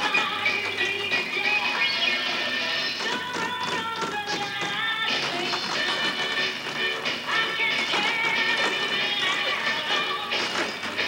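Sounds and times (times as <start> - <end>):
tap shoes clicking on stage: 0.0 - 11.0.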